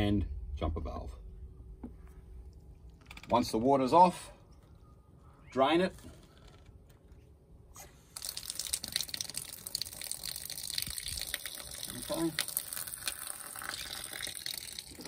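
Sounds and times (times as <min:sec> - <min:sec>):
water running from a tap: 0:08.2 - 0:15.0.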